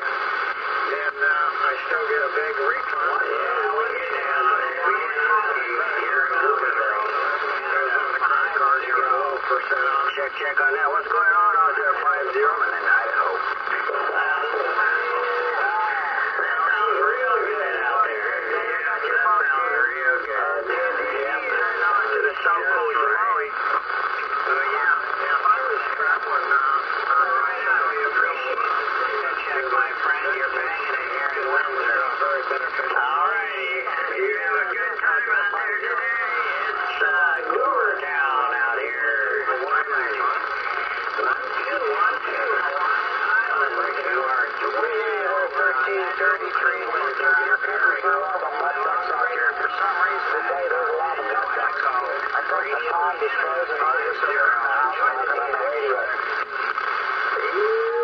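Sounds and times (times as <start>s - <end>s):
tinny voices over radio: 0.0s - 58.0s.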